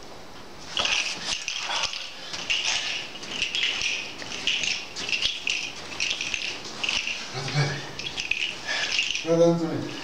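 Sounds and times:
rustling and crackling: 0.6s - 10.0s.

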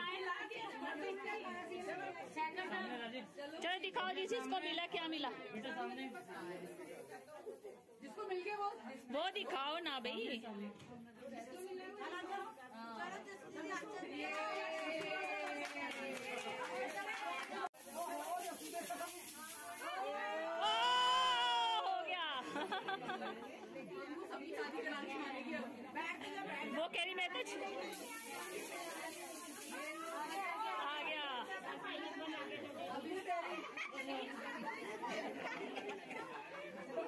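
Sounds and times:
women chattering: 0.0s - 37.0s.

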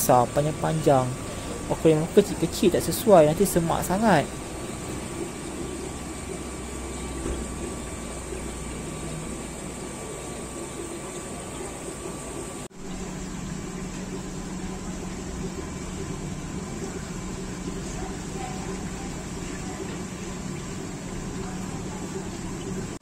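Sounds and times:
aquarium air pumps: 0.0s - 23.0s
water bubbling: 0.0s - 23.0s.

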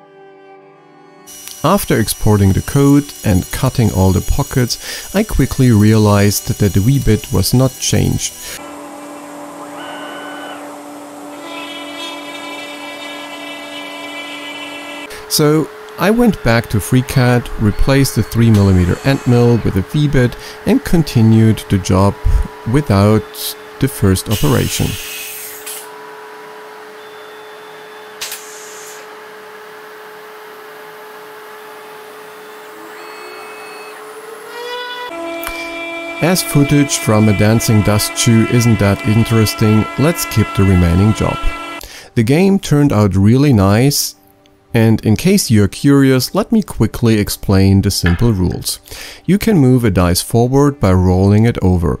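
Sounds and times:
dust extraction hiss: 1.3s - 25.9s, 28.2s - 29.1s, 35.0s - 42.1s
router spindle cutting wood: 1.3s - 27.0s, 29.0s - 41.8s
higher many-toned whine: 1.3s - 28.8s, 32.0s - 41.8s
high whine: 8.5s - 26.0s, 35.1s - 41.8s
short sharp knock: 48.0s - 48.4s.

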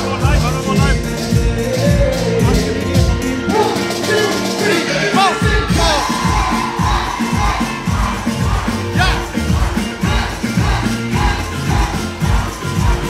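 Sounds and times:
crowd voices: 0.0s - 13.0s
live band playing: 0.0s - 13.0s
heavy drum beat: 5.2s - 13.0s.

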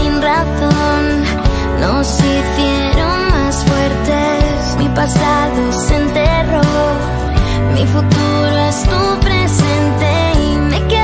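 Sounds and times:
person singing: 0.0s - 11.0s
pop ballad music: 0.0s - 11.0s.

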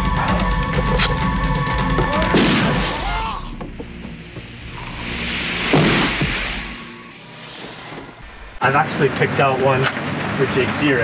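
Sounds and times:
tense film music: 0.0s - 8.6s
flare hissing whoosh: 4.4s - 8.6s.

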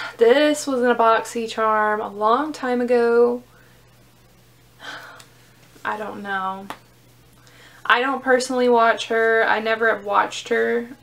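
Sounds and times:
woman speaking: 0.0s - 3.5s, 5.8s - 6.8s, 7.9s - 11.0s
woman breathing: 4.8s - 5.6s, 7.4s - 7.9s.

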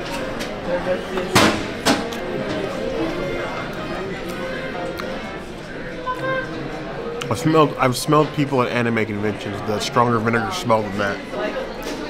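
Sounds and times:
background music: 0.0s - 11.3s
indistinct chatter: 0.0s - 12.0s.

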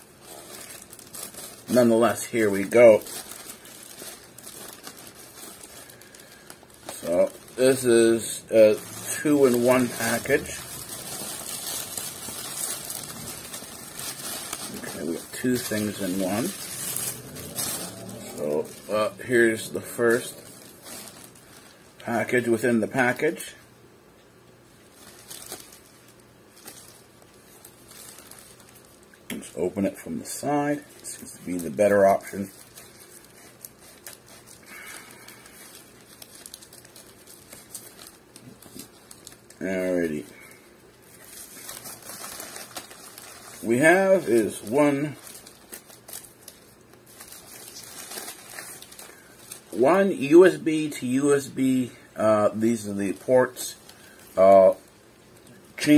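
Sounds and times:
package wrapping crinkling: 0.0s - 23.5s, 24.7s - 55.9s.

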